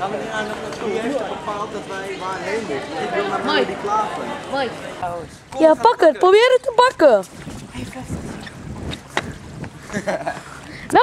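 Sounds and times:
wind rumbling on microphone: 6.6s - 11.0s.

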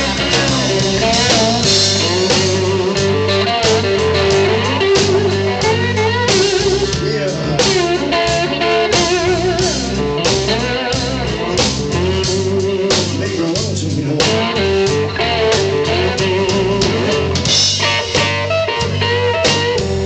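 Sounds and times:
bass line: 0.0s - 20.0s
drum kit beat: 0.0s - 20.0s
electric guitar bending notes: 0.0s - 20.0s.

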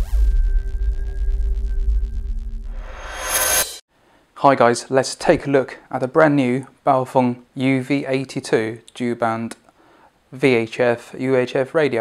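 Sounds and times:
deep steady bass: 0.0s - 3.2s
whooshing swell: 0.0s - 3.8s.

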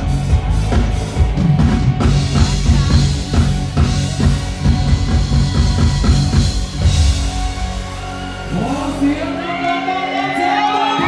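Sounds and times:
drum kit beat: 0.0s - 9.6s
bass guitar: 0.0s - 11.0s
live band over loudspeakers: 0.0s - 11.0s.

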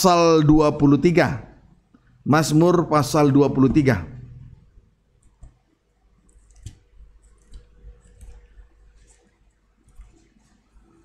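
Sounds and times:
faint clicks and taps: 5.2s - 10.7s.

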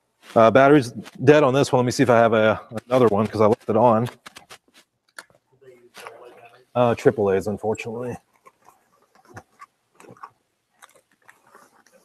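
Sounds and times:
hands rustling: 2.6s - 7.1s, 8.1s - 12.0s.

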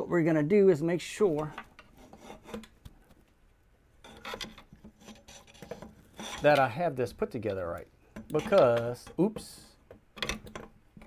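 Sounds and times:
metal parts rubbing and scraping: 4.0s - 6.8s.

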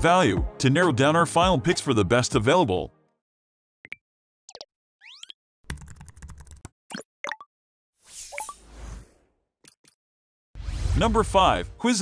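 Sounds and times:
rapid keyboard-like clicks: 5.7s - 6.6s.

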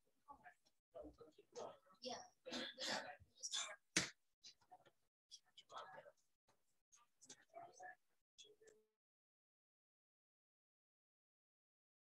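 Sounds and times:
faint whispered speech: 0.2s - 9.0s.

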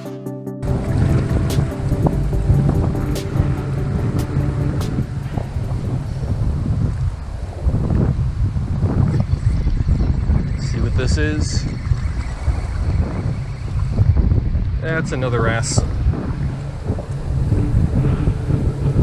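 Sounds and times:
electronic background music: 0.0s - 6.9s, 16.0s - 19.0s
wind buffeting microphone: 0.6s - 19.0s.

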